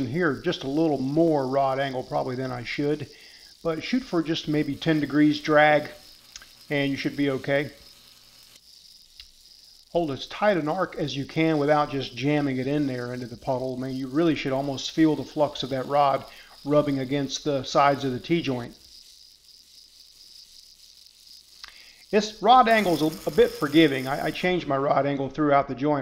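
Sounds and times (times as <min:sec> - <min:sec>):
welding arc hiss and crackle: 0:00.0 - 0:25.2.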